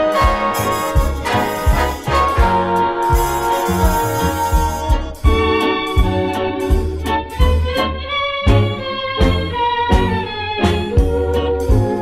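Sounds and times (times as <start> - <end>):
big band swing music: 0.0 - 12.0.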